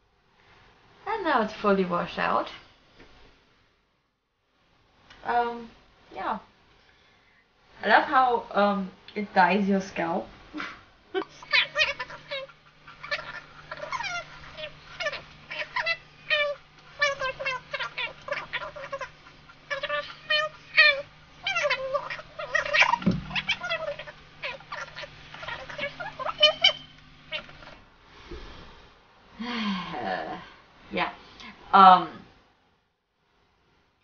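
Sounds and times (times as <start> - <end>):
faint steady hum: 0.0 - 34.0
high-pitched animal chirping: 11.3 - 27.8
low thump: 23.0 - 23.4.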